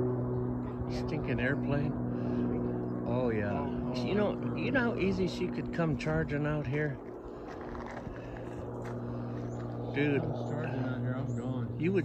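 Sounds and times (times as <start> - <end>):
distant engine drone: 0.0 - 12.0.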